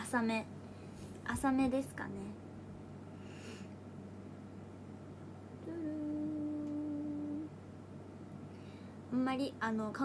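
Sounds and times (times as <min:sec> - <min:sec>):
woman humming: 0:05.6 - 0:07.5.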